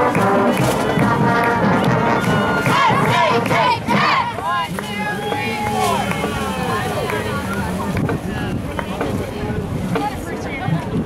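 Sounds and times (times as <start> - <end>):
brass band music: 0.0 - 6.9
cheerleaders shouting a cheer: 0.5 - 7.7.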